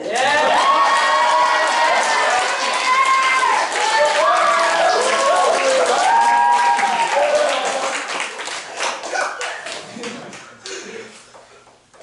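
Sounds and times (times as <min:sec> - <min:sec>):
excited cheering and shouts: 0:00.0 - 0:07.8
audience clapping: 0:00.0 - 0:10.8.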